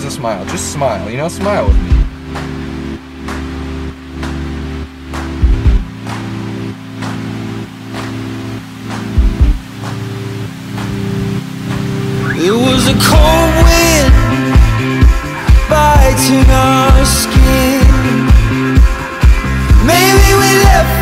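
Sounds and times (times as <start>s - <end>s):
sustained low chords: 0.0s - 21.0s
steady drum beat: 0.5s - 3.6s, 5.0s - 12.1s, 12.7s - 21.0s.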